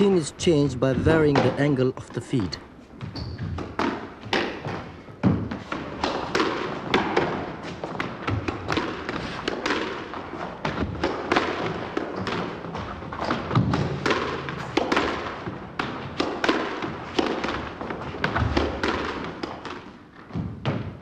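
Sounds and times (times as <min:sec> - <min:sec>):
squash ball knocks: 0:03.0 - 0:21.0.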